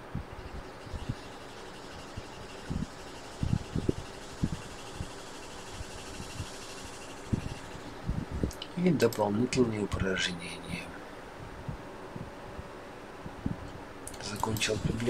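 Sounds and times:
steady background hiss: 0.0 - 15.0
soft low thumps: 7.3 - 8.6.

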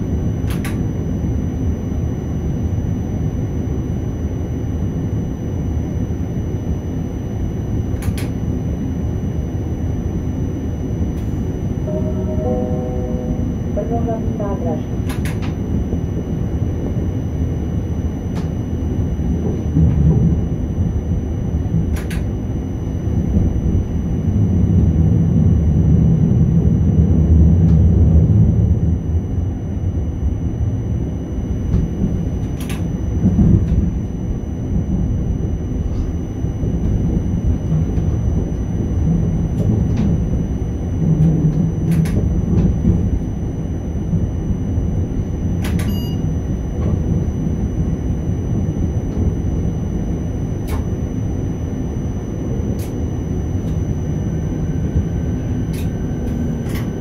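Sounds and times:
faint high whine: 0.0 - 57.0
train running gear rumble: 0.0 - 57.0.

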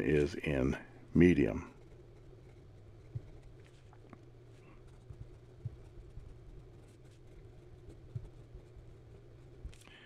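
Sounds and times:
steady low hum: 0.0 - 10.0
fountain pen scratching on paper: 1.2 - 9.8.

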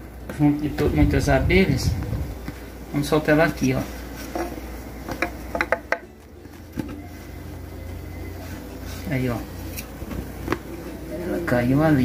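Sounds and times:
steady low hum: 0.0 - 12.0
plastic tube tapping on wood: 5.1 - 6.1.

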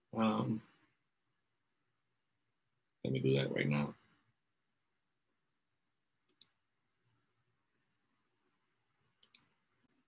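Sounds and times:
computer mouse clicks: 6.3 - 6.6, 9.2 - 9.5.

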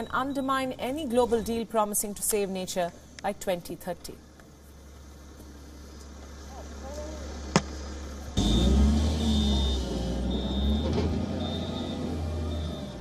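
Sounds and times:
reversing alarm beeping: 0.0 - 1.6, 8.4 - 13.0
diesel engine rumbling: 4.5 - 13.0.

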